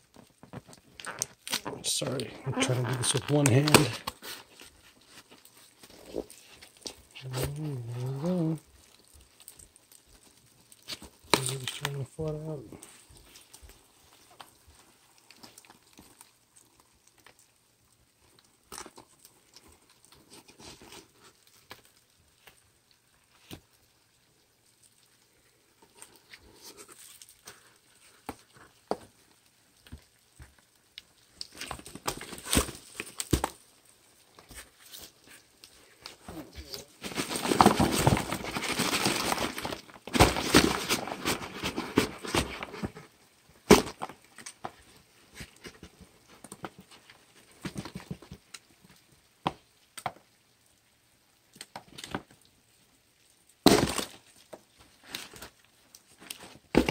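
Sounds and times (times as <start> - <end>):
cardboard shaking and scraping: 36.2 - 44.0
cardboard taps and rustles: 36.3 - 44.8, 45.4 - 48.4, 56.3 - 56.9.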